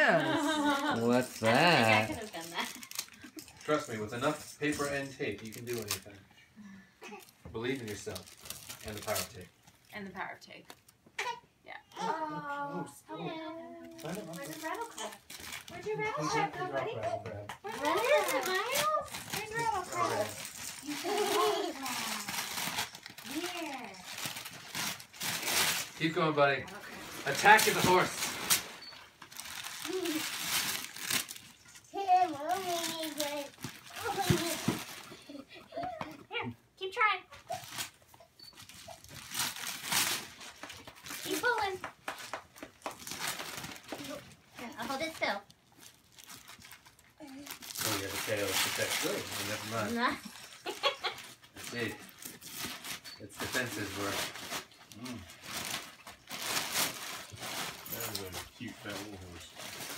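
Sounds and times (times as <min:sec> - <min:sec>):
wrapping paper tearing and crumpling: 0:00.4 - 0:06.2, 0:07.2 - 0:09.9, 0:13.9 - 0:16.2, 0:17.6 - 0:35.4, 0:37.5 - 0:42.2, 0:42.8 - 0:59.9
child vocal sounds: 0:19.4 - 0:22.3.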